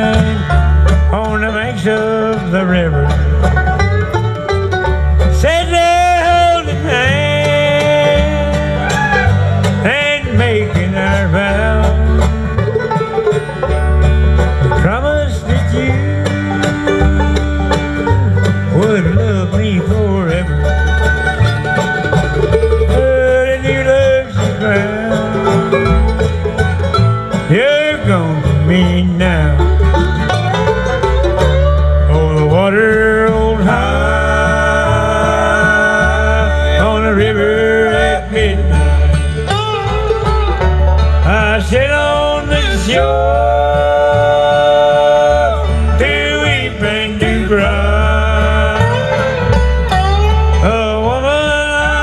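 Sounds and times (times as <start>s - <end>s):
bluegrass band playing: 0.0s - 52.0s
upright bass plucking: 0.0s - 52.0s.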